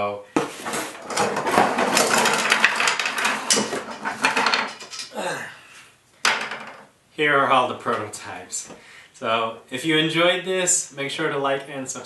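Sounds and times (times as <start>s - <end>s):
plastic parts clattering onto bench: 0.4s - 5.2s, 6.2s - 6.9s.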